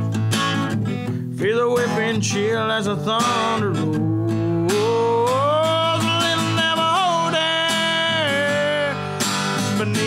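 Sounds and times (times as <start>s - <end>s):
strummed acoustic guitar: 0.0s - 10.0s
man singing: 1.3s - 10.0s.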